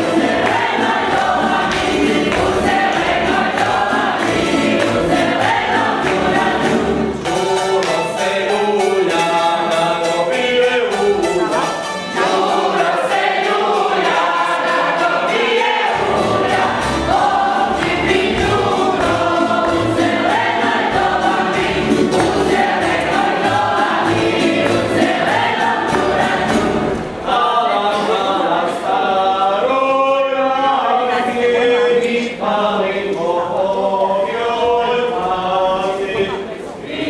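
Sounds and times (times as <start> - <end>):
deep accompaniment: 0.0 - 27.6
men and women singing together: 0.0 - 37.0.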